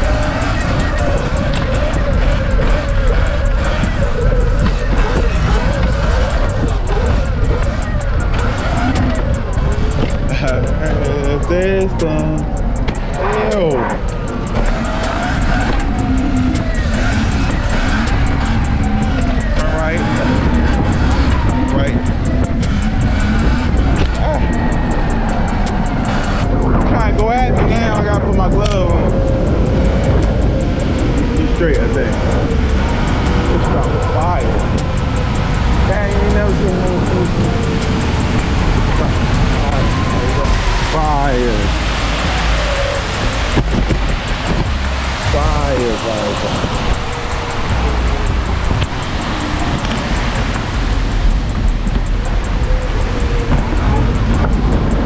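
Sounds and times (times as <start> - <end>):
music: 0.0 - 55.0
road rumble: 0.0 - 55.0
voices: 0.0 - 55.0
wind buffeting microphone: 0.0 - 55.0.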